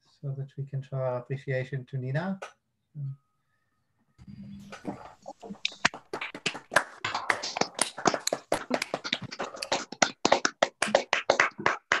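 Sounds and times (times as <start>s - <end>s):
people clapping: 4.8s - 12.0s.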